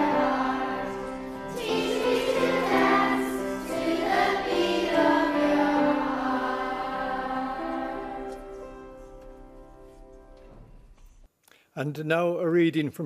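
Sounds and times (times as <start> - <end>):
children's choir singing: 0.0 - 9.5.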